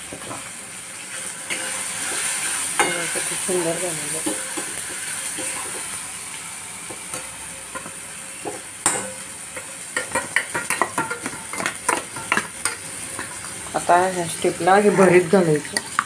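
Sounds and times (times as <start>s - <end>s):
masala sizzling in oil: 0.0s - 16.0s
steel spatula scraping pan: 7.1s - 13.5s.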